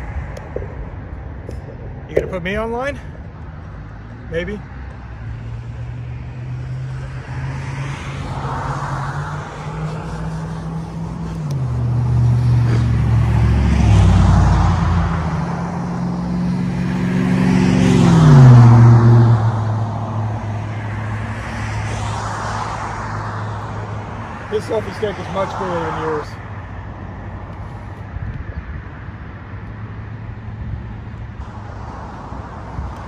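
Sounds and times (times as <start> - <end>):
vehicles passing by: 0.0 - 33.0.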